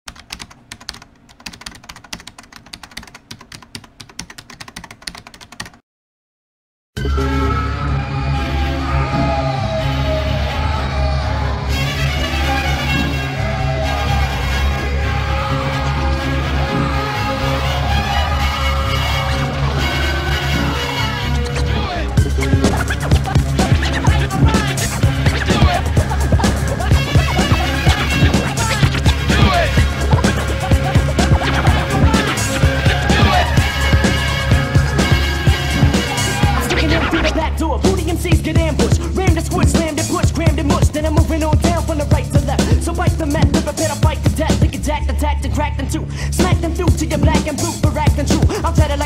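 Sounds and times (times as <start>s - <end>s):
rapid irregular clicking: 0.1s - 5.8s
turntable scratching: 18.1s - 44.9s, 46.4s - 49.0s
hip-hop drum beat with bass: 22.2s - 44.9s, 46.4s - 49.0s.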